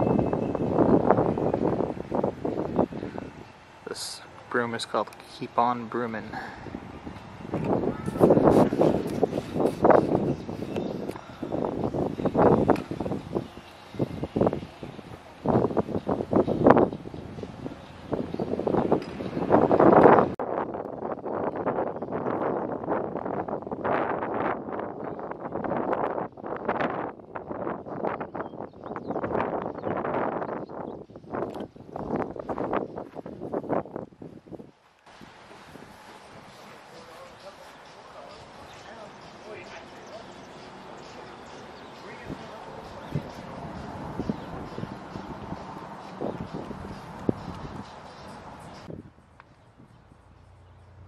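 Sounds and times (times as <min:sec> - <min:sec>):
wind buffeting microphone: 0:00.0 - 0:50.3.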